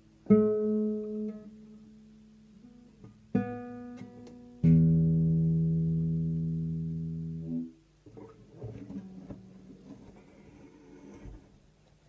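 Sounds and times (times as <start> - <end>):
guitar chord ringing: 2.6 - 7.8
guitar handling knocks and rubbing: 8.0 - 11.6.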